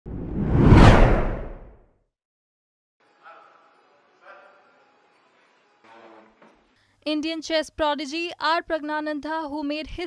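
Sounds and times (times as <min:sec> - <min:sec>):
low rumble: 0:00.1 - 0:01.7
whoosh sound effect: 0:00.1 - 0:01.7.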